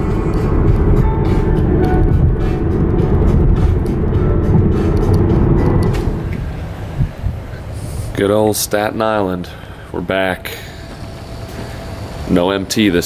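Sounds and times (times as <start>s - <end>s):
background music: 0.0s - 7.2s
car road noise rumble: 0.0s - 13.0s.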